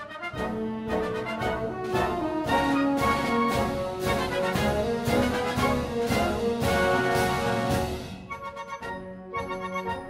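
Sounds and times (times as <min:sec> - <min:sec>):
orchestral music led by brass: 0:00.0 - 0:10.0.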